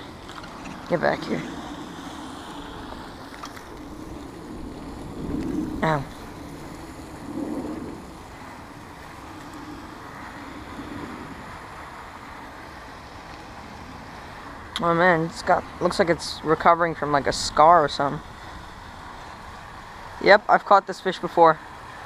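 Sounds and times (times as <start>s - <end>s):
wind noise on microphone: 0.0s - 20.3s.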